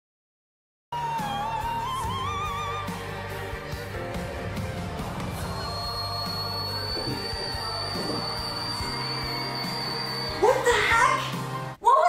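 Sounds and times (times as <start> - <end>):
live concert backing music: 1.0 - 11.7
man singing high whistle note: 5.6 - 10.4.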